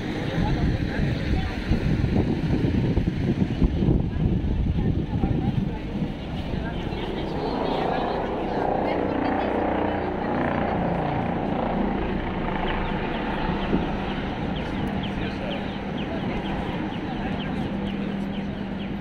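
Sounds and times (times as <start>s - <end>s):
voices of people walking by: 0.0s - 19.0s.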